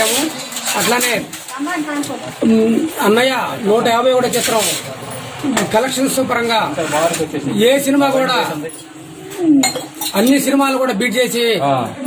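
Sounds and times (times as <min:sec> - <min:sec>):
metal plates and utensils clinking: 0:00.0 - 0:11.4.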